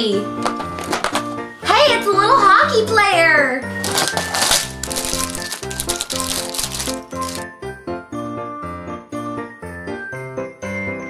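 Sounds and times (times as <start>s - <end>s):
plastic packaging crinkling: 3.7s - 7.4s
small plastic pieces rattling: 3.8s - 7.4s.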